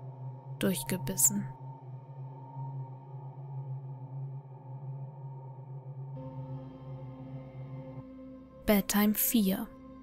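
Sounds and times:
low pulsing drone: 0.0 - 10.0.

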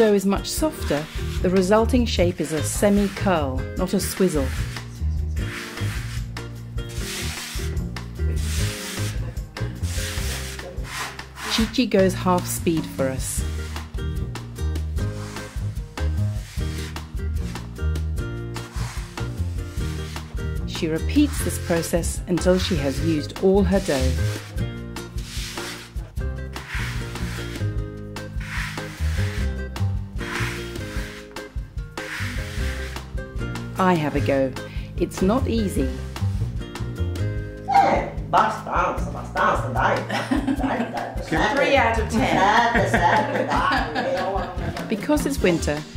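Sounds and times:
background music: 0.0 - 45.9
hand rubbing dough on wooden board: 0.6 - 1.8, 2.4 - 6.3, 8.3 - 9.2, 9.8 - 11.8, 15.0 - 17.8, 18.6 - 20.4, 21.0 - 24.6, 25.2 - 26.0, 26.6 - 27.8, 28.4 - 29.6, 30.2 - 33.1.

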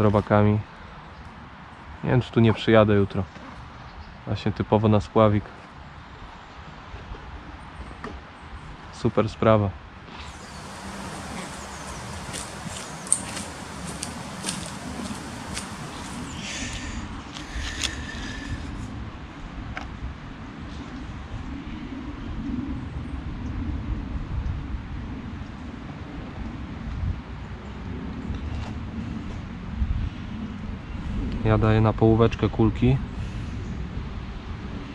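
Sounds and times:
high chirping: 10.3 - 16.7
outdoor background rumble: 10.3 - 18.9.

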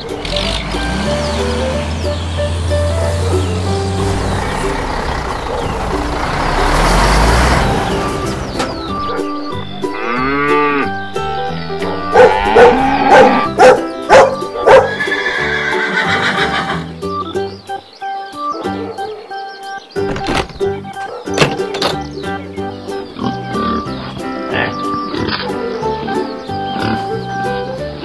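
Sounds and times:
vehicle engine rumbling: 0.0 - 14.6
children's background music: 0.0 - 28.0
animal calls: 8.8 - 16.9
horse whinnying: 14.8 - 16.9.

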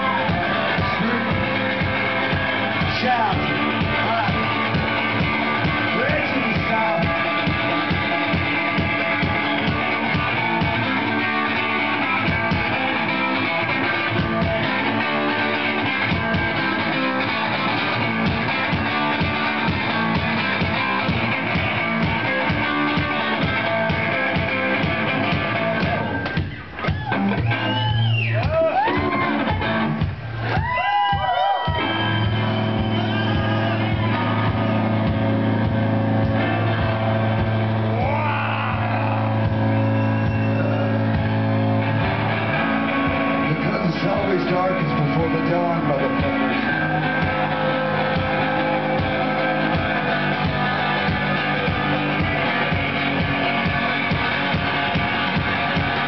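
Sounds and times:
bass drum beat: 0.0 - 56.0
live guitar music: 0.0 - 56.0.

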